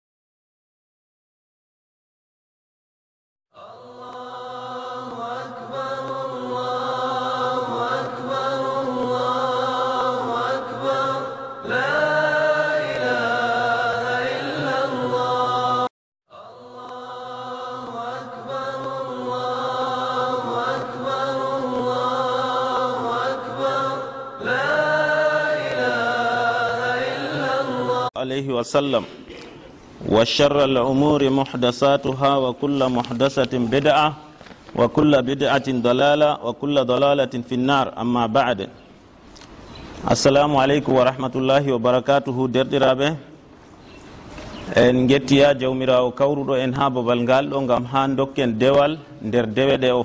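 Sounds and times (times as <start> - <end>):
solo voice religious chanting: 3.5 - 38.9, 40.0 - 43.4, 44.5 - 50.0.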